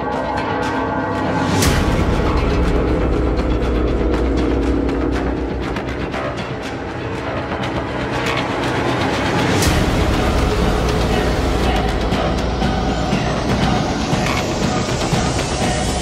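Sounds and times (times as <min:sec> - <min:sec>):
dense rumbling drone: 0:00.0 - 0:16.0.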